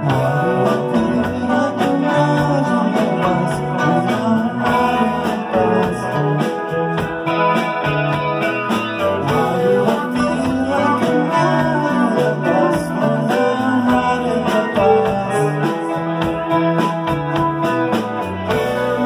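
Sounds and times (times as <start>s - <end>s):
bass line: 0.0s - 19.0s
electric guitar chords: 0.0s - 19.0s
keyboard: 0.0s - 19.0s
steady drum beat: 0.0s - 19.0s.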